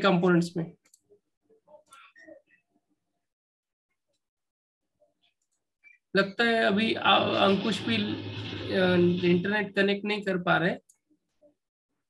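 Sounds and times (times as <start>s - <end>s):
man speaking: 6.2s - 10.8s.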